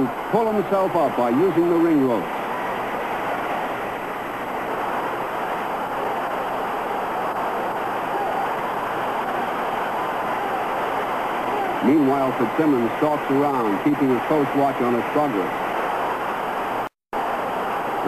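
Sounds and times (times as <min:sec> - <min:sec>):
crowd voices rumbling: 0:04.7 - 0:16.3.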